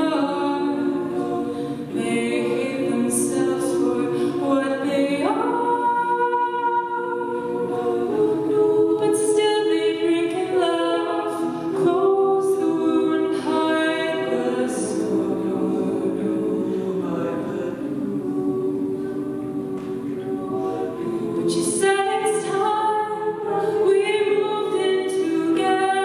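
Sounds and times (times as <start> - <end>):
backing vocal harmonies: 0.0 - 26.0.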